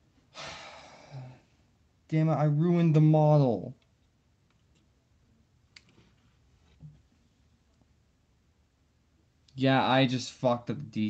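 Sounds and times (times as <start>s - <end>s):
man sighing: 0.3s - 1.5s.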